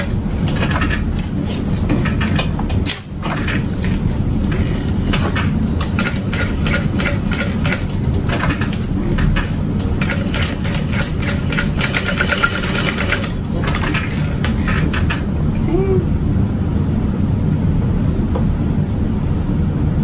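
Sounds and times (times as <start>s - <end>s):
sewing machine low hum: 0.0s - 16.5s.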